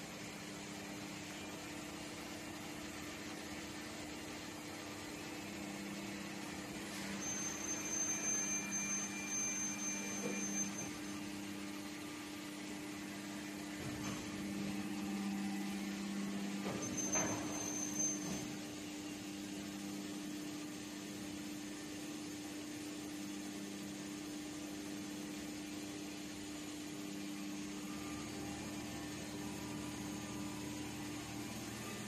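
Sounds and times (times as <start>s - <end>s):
faint high whine: 5.2s - 19.6s.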